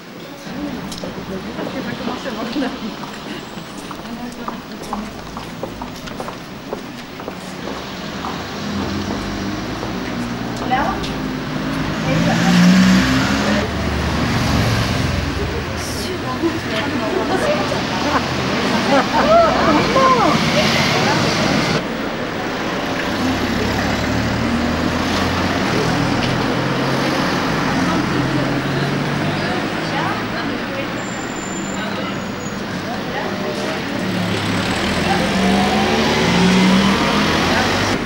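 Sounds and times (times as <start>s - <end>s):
vehicles passing close by: 0.0s - 38.0s
low engine note rising: 7.8s - 30.6s, 33.2s - 38.0s.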